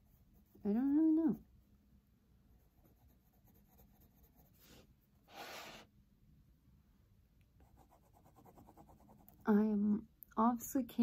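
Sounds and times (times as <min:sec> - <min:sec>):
pencil crayon scratching paper: 0:02.5 - 0:04.9, 0:07.6 - 0:09.4.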